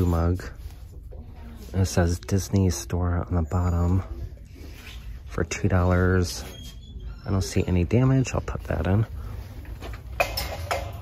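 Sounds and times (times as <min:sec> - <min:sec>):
mug set down in wire cart: 0:09.8 - 0:11.0
mugs and glassware clinking: 0:10.0 - 0:11.0.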